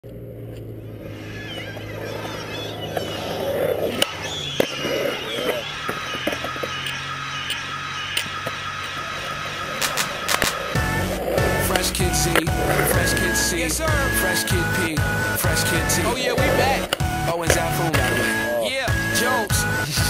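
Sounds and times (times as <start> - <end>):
faint voices: 1.0 - 10.8
skateboard clacks on concrete: 9.7 - 10.8.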